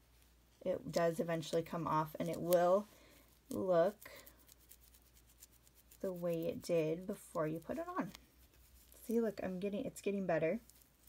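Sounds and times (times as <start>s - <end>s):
cotton pad rubbing on fingernail: 0.9s - 9.7s, 10.6s - 11.0s.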